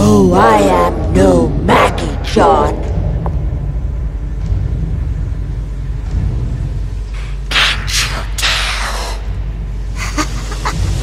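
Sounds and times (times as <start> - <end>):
dark ambient rumbling drone: 0.0 - 11.0.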